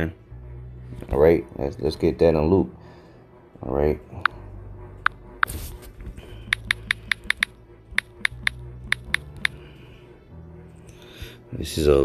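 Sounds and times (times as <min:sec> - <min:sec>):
quiet background music: 0:00.0 - 0:12.0
sharp clicks and taps: 0:06.5 - 0:09.6.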